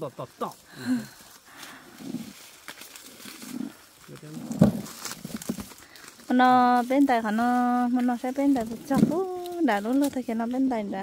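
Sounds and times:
dry corn stalks rustling: 0:00.0 - 0:11.0.

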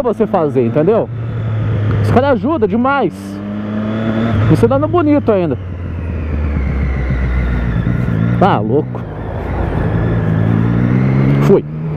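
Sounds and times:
motorcycle engine running: 0:00.0 - 0:11.9
road and wind noise: 0:00.0 - 0:11.9.

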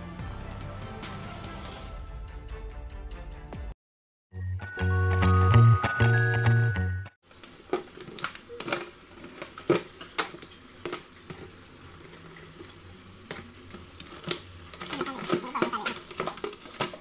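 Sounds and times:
tap water running into sink: 0:07.3 - 0:17.0.

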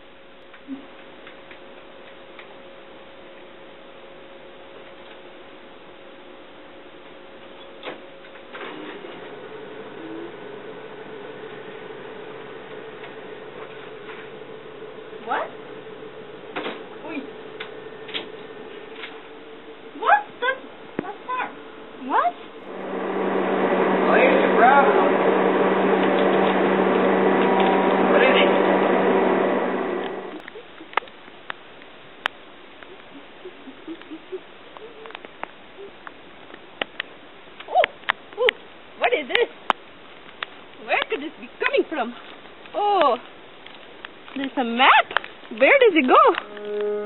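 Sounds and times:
photocopier humming and hissing: 0:04.8 - 0:30.4.

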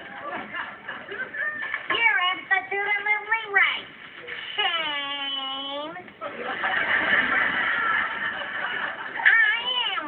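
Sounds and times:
high-pitched voice wailing: 0:04.6 - 0:06.0.

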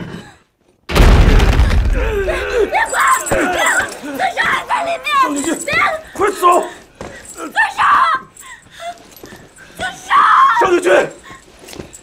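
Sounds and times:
sobbing: 0:01.8 - 0:11.6
woman crying out: 0:01.9 - 0:10.7
man shouting: 0:02.0 - 0:06.7.

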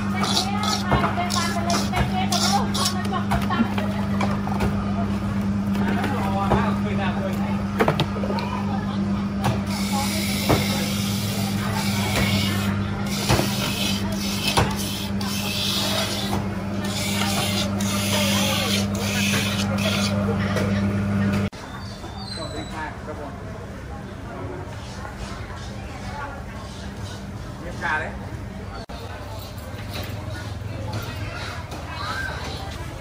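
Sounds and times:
rough grinding noise: 0:00.0 - 0:03.1, 0:09.9 - 0:20.2.

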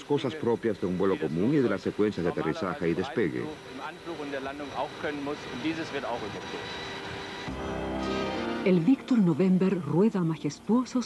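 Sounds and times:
man speaking: 0:00.0 - 0:06.7
background music with held chords: 0:07.4 - 0:10.9.

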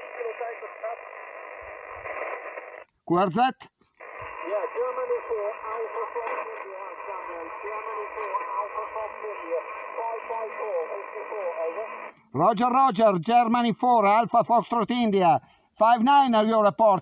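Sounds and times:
radio hiss: 0:00.0 - 0:02.9, 0:03.9 - 0:12.7
narrow-band radio speech: 0:00.0 - 0:17.0.

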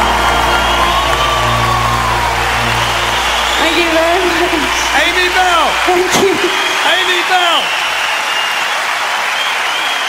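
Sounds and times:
sustained sung note and chord: 0:00.0 - 0:06.1
crowd cheering and whooping: 0:00.0 - 0:10.0.

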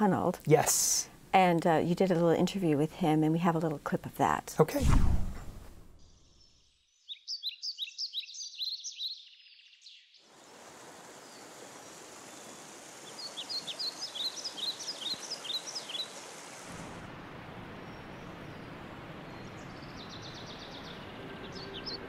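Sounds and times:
small birds chirping: 0:06.0 - 0:16.6, 0:17.8 - 0:22.0
river running over rocks: 0:10.3 - 0:20.0.

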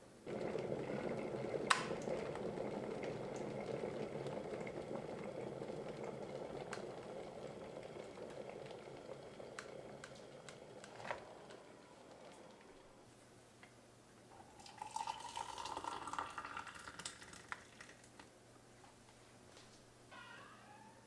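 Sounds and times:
electric kettle boiling water: 0:00.0 - 0:13.1, 0:14.2 - 0:18.3.

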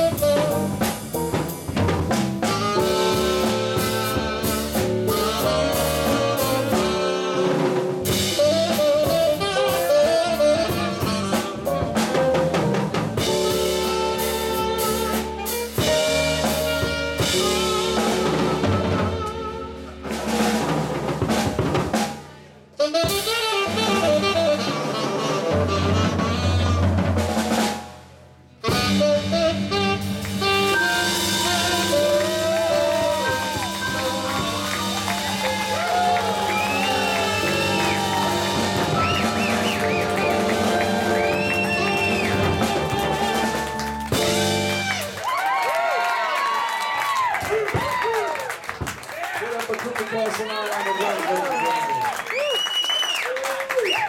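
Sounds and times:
drum kit snare and cymbals: 0:00.0 - 0:45.6
jazz combo playing: 0:00.0 - 0:46.5.

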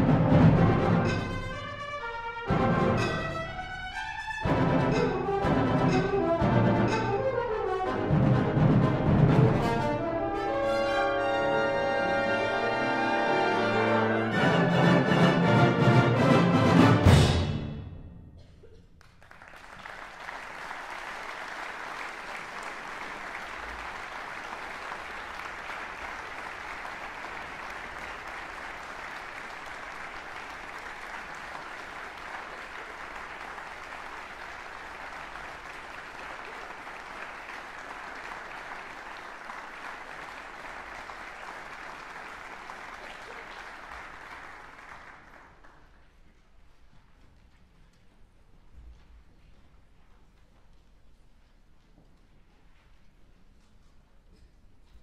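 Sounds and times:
audience applauding: 0:19.0 - 0:46.1.

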